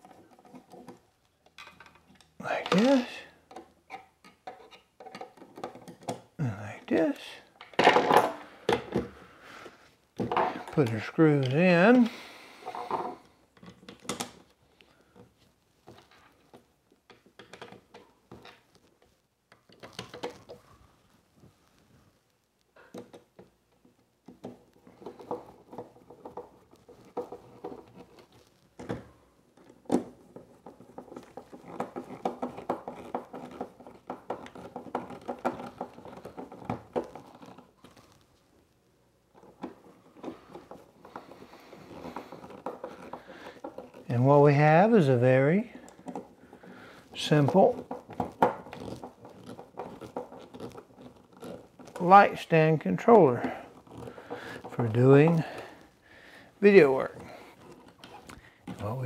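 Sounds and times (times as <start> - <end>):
clicks and knocks of handling: 0.0 - 20.8, 22.6 - 38.4, 39.3 - 44.3, 45.1 - 55.9
screws scraping and creaking: 10.3 - 14.2, 39.3 - 56.0.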